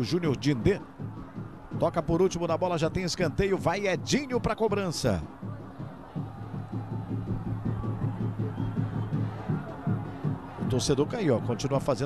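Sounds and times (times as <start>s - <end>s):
drums beating quickly: 0.0s - 11.9s
crowd: 0.0s - 12.0s.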